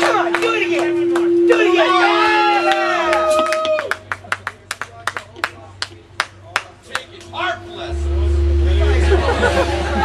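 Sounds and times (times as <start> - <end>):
steady held tone: 0.0 - 3.4, 7.4 - 10.0
loud low drone: 7.3 - 10.0.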